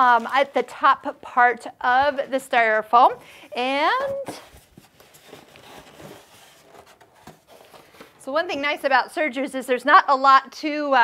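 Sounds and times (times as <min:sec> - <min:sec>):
styrofoam scraping and rustling: 0:03.6 - 0:08.3.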